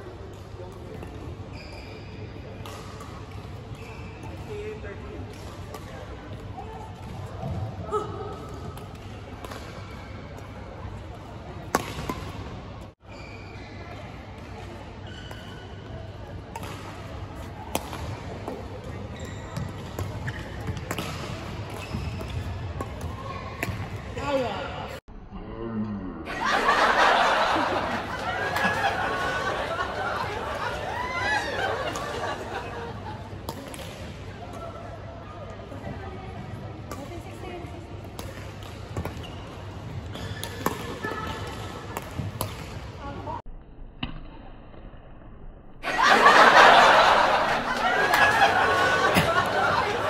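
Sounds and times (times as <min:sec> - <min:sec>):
shoe squeak: 0:01.5 - 0:02.3, 0:13.1 - 0:13.8, 0:15.0 - 0:15.6, 0:19.1 - 0:20.6, 0:21.7 - 0:22.5, 0:39.2 - 0:40.6
rackets striking shuttlecock: 0:17.7 - 0:24.1.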